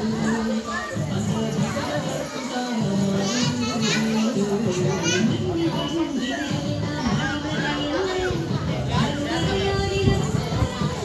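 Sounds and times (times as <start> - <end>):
children singing: 0.0 - 11.0.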